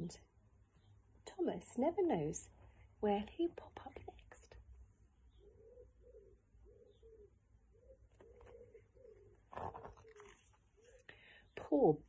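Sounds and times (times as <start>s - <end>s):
pigeon cooing: 5.3s - 11.1s
book rustling: 8.1s - 11.1s.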